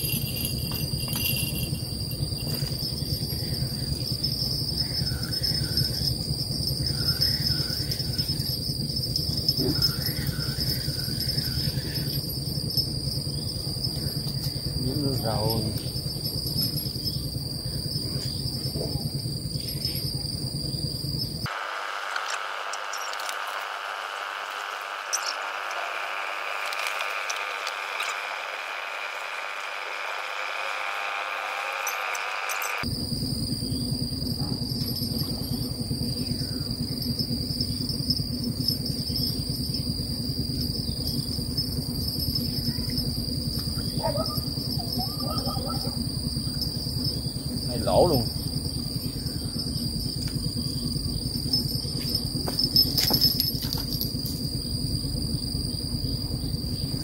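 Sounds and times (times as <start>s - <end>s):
insects buzzing: 0.0s - 57.0s.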